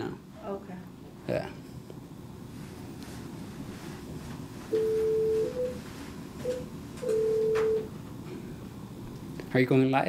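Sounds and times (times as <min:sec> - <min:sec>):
low room noise: 0:00.0 - 0:10.0
long telephone beeps: 0:04.8 - 0:05.8, 0:06.4 - 0:07.9.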